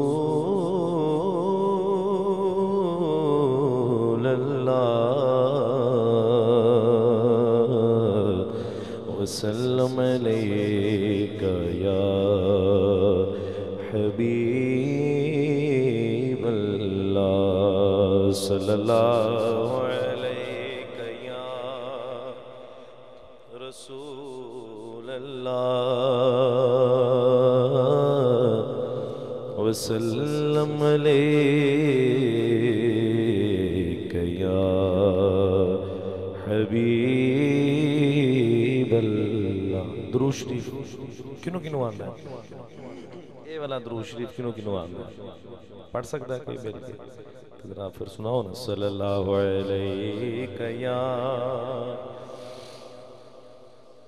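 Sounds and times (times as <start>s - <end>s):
man singing through a microphone: 0.0s - 22.4s, 23.5s - 52.2s.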